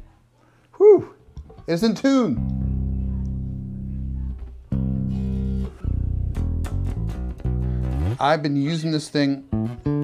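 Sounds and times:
electric bass guitar notes: 0:01.5 - 0:10.0.

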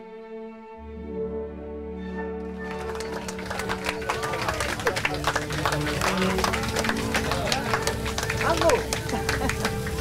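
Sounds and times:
orchestral music with violins: 0:00.0 - 0:10.0
dense applause: 0:02.4 - 0:10.0
diners' voices: 0:02.8 - 0:10.0.

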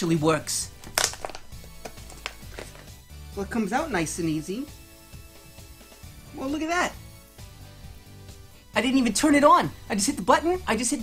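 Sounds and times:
faint background music: 0:00.0 - 0:11.0
plastic blister pack crackling: 0:00.8 - 0:02.9.

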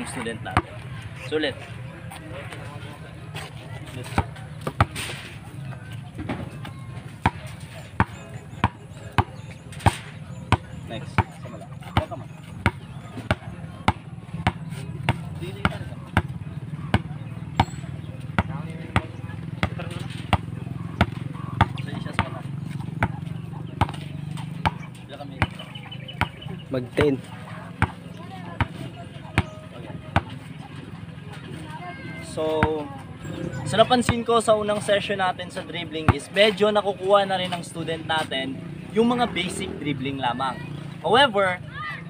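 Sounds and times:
basketball bouncing on concrete: 0:00.2 - 0:00.8, 0:04.0 - 0:05.0, 0:06.2 - 0:25.6, 0:26.2 - 0:30.3, 0:34.0 - 0:34.3.

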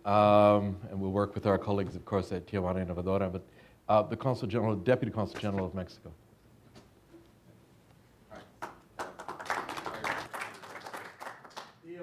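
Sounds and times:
audience applause: 0:08.6 - 0:11.8.

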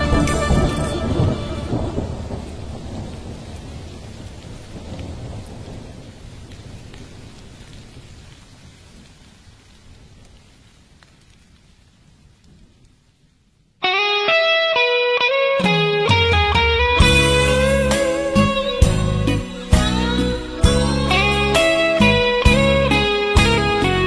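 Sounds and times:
music notes: 0:00.0 - 0:02.7, 0:13.8 - 0:24.0
rolling thunder: 0:00.0 - 0:08.3
rain: 0:00.0 - 0:24.0.

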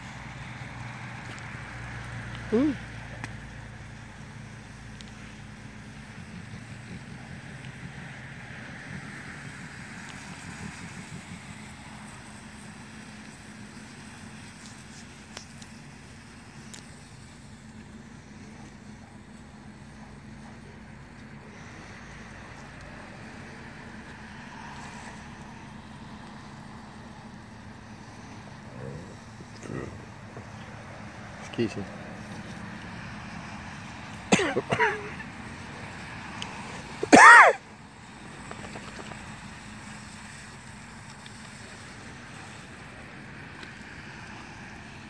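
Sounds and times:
garden sprinkler spraying water: 0:00.0 - 0:45.0.

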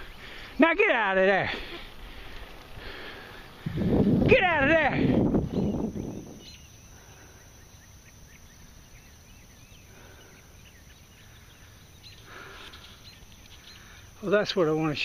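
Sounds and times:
high insect drone: 0:00.0 - 0:15.0.

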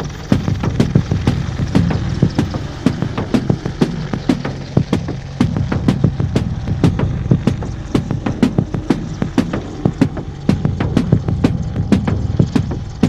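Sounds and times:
helicopter rotor and turbine drone: 0:00.0 - 0:13.0
rotor thuds: 0:00.2 - 0:13.0.

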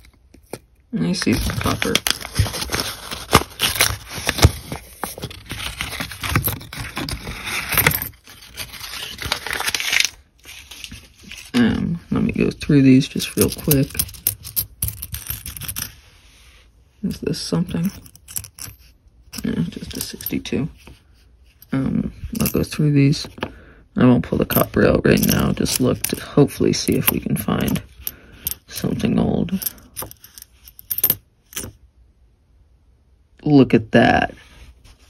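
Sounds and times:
coins brushing rustle: 0:01.2 - 0:11.6, 0:13.1 - 0:16.0, 0:17.6 - 0:20.9, 0:22.3 - 0:23.5, 0:24.4 - 0:31.8
coins clicking together: 0:13.3 - 0:15.9, 0:26.8 - 0:31.7.

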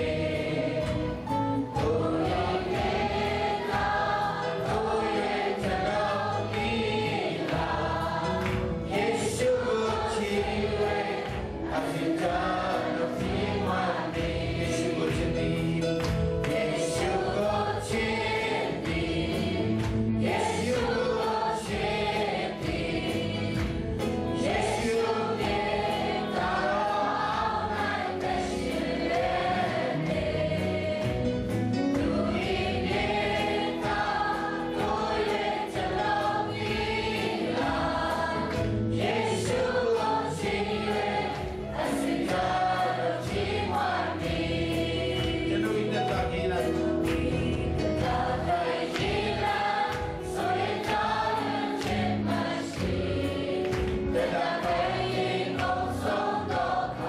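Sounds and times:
crowd singing along: 0:00.0 - 0:57.0
worship song singing over pa: 0:00.0 - 0:57.0.

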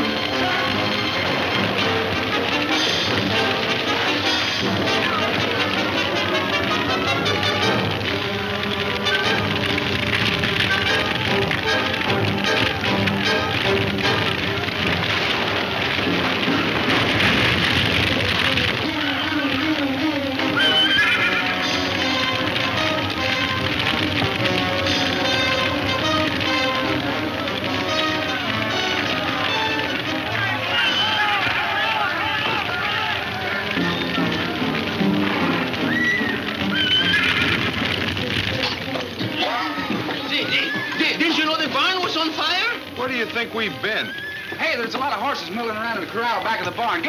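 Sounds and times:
hooves clattering: 0:00.0 - 0:47.0
orchestral film score: 0:00.0 - 0:47.0
horses whinnying: 0:00.2 - 0:42.3, 0:43.6 - 0:44.9.

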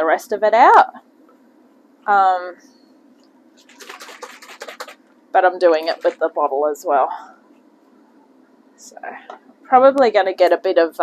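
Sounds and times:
water sloshing in plastic bottle: 0:03.6 - 0:05.0, 0:05.7 - 0:06.3.

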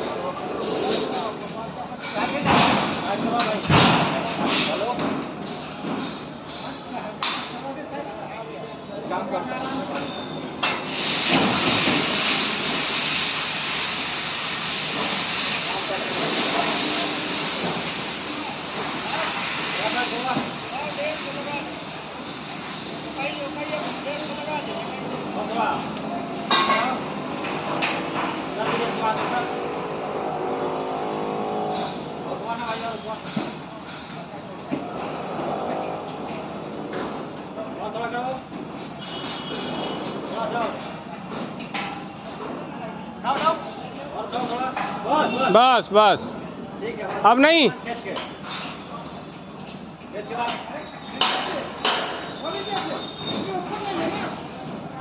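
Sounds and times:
voices: 0:18.3 - 0:30.8.

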